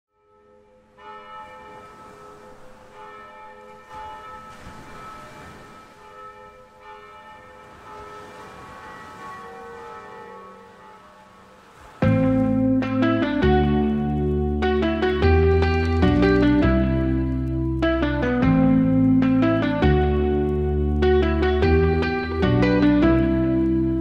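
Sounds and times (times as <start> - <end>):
church bells ringing: 0.1 - 18.4.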